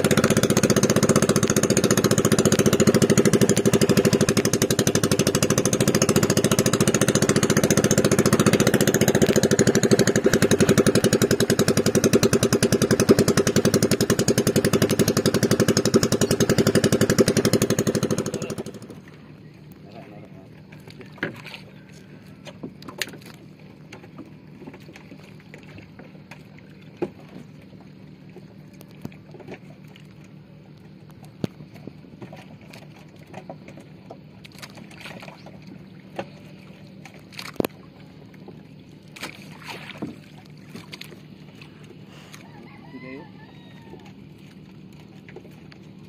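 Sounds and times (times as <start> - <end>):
knocks and splashes: 0.0 - 46.0
low motor hum: 0.0 - 46.0
water lapping at a hull: 0.0 - 46.0.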